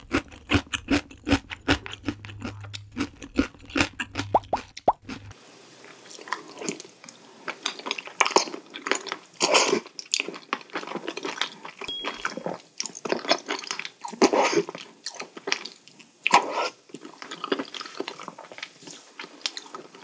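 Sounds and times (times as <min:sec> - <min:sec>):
wet mouth noises: 0:00.0 - 0:05.3
chewing and crunching food: 0:00.0 - 0:11.9, 0:12.8 - 0:20.0.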